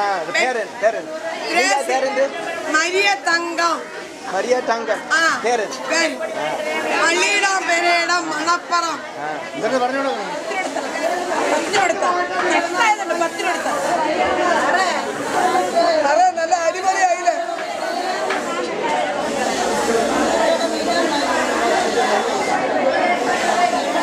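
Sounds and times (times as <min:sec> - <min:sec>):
people talking over one another: 0:00.0 - 0:24.0.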